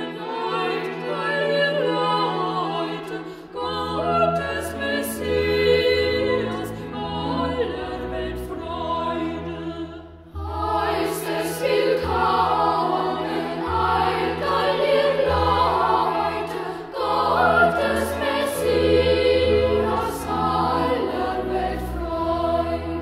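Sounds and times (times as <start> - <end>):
boys' choir singing a carol: 0.0 - 23.0.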